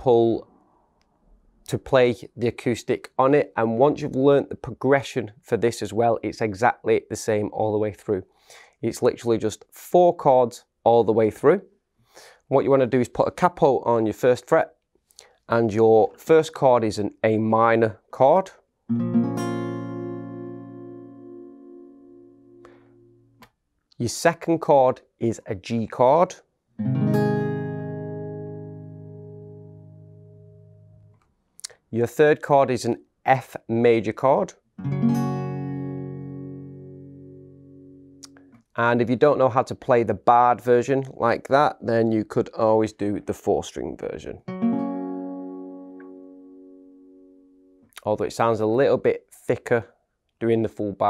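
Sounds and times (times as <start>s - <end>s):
acoustic guitar chord strum: 18.9s - 23.4s, 26.8s - 31.1s, 34.8s - 38.3s, 44.5s - 47.8s.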